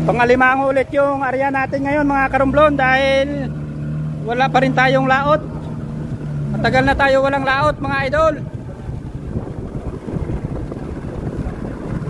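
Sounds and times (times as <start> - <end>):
small boat running: 0.0 - 12.0
wind buffeting microphone: 0.0 - 12.0.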